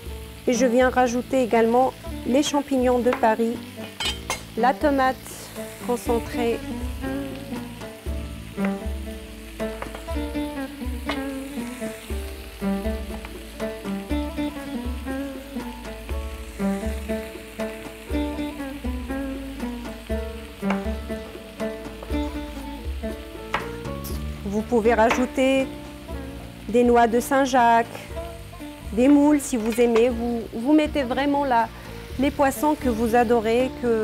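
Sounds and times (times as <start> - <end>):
food sizzling in a wok: 0.0 - 34.0
music with bass beat: 6.8 - 25.1.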